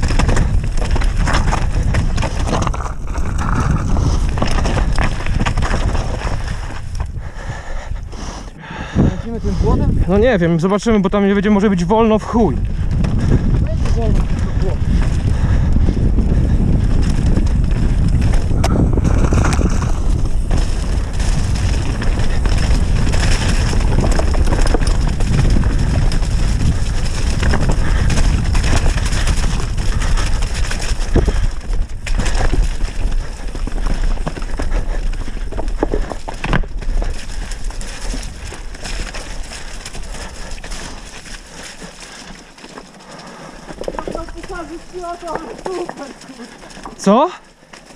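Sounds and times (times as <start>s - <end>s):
wheels knocking on stones: 0.0s - 7.1s, 11.7s - 47.9s
bike rattling on rocky trail: 0.0s - 8.0s, 9.0s - 47.9s
wind buffeting microphone: 0.0s - 42.0s, 43.3s - 47.0s.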